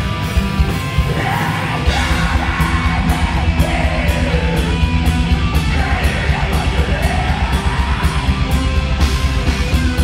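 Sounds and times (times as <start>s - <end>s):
distorted electric guitar: 0.0s - 10.0s
dense drumming: 0.5s - 10.0s
harsh screamed vocals: 1.0s - 8.5s.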